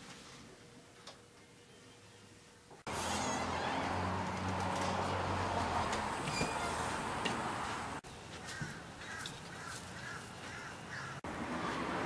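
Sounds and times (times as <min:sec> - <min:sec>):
outdoor background noise: 0:00.0 - 0:12.0
bird calling: 0:08.4 - 0:11.2.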